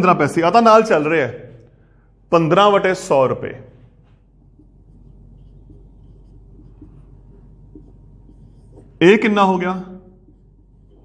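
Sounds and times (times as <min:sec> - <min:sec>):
low steady hum: 0:01.0 - 0:11.0
marker pen on whiteboard: 0:02.5 - 0:11.0.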